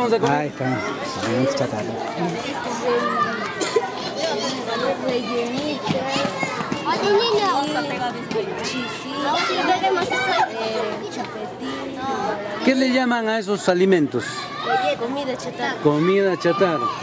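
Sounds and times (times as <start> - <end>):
children's voices babbling: 0.6 - 13.0, 14.2 - 17.0.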